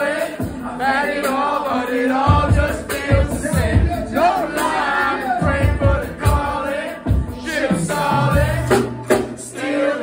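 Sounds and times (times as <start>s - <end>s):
voices chanting over backing track: 0.0s - 10.0s.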